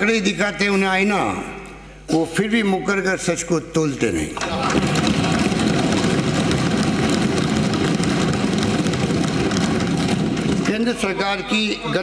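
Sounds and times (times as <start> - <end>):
desks being thumped: 4.4 - 11.5.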